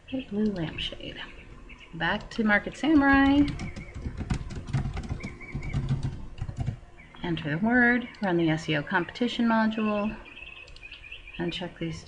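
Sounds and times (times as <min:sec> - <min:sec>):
computer keyboard typing: 0:02.2 - 0:06.8.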